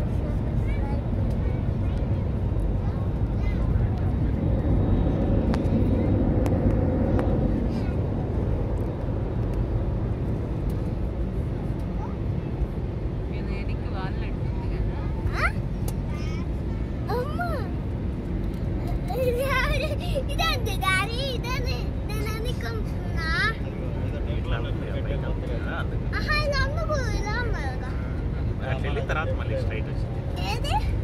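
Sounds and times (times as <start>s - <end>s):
airliner cabin engine rumble: 0.0s - 31.0s.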